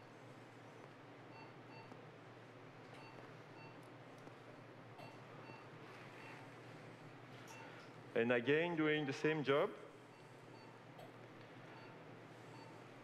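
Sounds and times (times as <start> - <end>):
medical equipment beeps: 2.9 - 3.9, 5.0 - 6.6, 7.4 - 7.9, 10.1 - 13.0.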